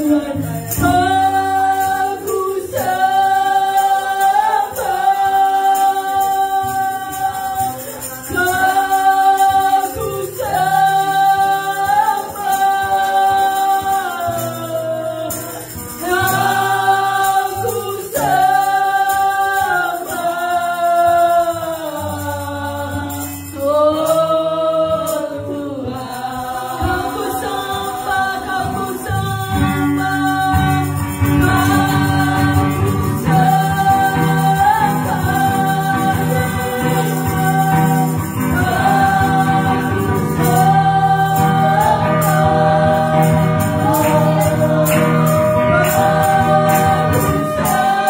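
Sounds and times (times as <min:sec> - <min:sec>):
acoustic guitar: 0:00.0 - 0:48.0
woman singing worship song: 0:00.0 - 0:48.0.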